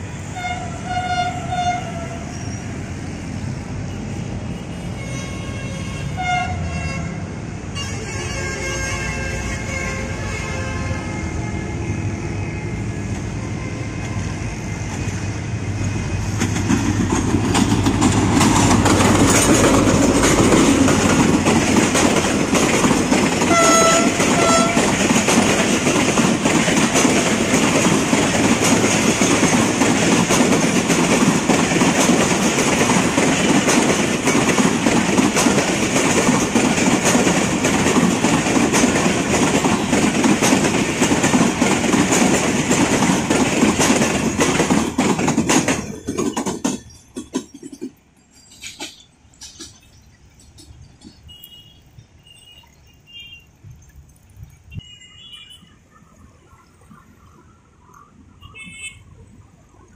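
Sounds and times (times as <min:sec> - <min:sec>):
train engine rumble: 0:00.0 - 0:54.8
train horn blasts: 0:00.2 - 0:02.5, 0:03.9 - 0:15.0, 0:23.4 - 0:25.0
train wheels clickety-clack: 0:13.9 - 0:52.0.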